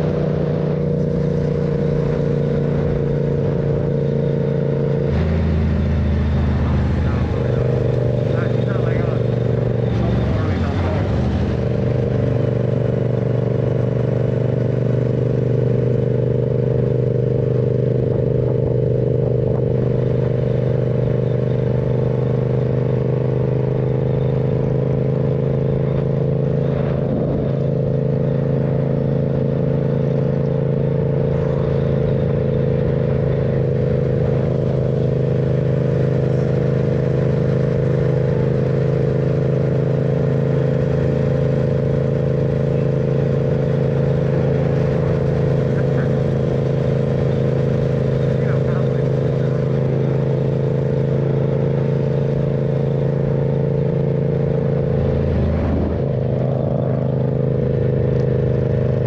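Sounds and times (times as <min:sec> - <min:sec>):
motorcycle engine cruising: 0:00.0 - 0:59.0.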